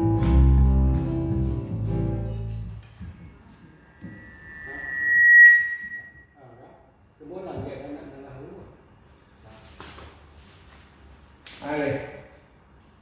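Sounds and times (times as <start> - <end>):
high feedback tone: 0.0 - 6.4.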